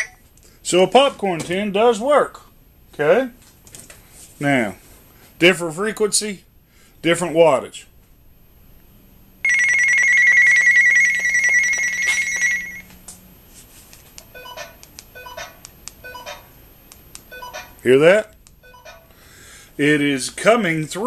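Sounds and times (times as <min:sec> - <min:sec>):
radio alert tone: 0:09.5 - 0:13.0.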